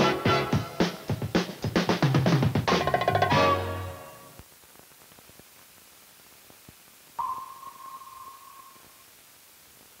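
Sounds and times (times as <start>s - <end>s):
faint hiss: 3.4s - 10.0s
sonar ping: 7.2s - 9.0s.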